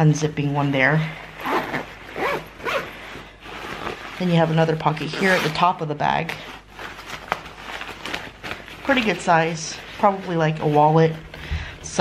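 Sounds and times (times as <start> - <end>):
fabric handling: 0.4 - 12.0
zipper pulled: 1.2 - 5.8.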